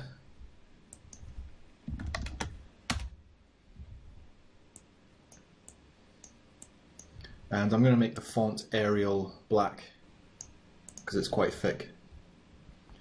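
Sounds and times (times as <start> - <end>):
keyboard typing: 0.9 - 3.2.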